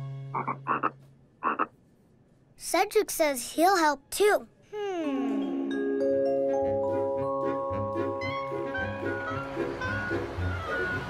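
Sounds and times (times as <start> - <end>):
cartoon frog croaking: 0.4 - 1.8.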